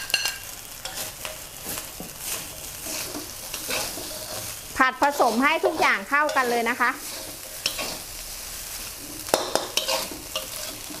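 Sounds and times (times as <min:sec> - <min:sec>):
light frying sizzle: 0:00.0 - 0:11.0
spatula scraping a metal wok: 0:00.0 - 0:11.0
woman speaking: 0:04.8 - 0:07.0.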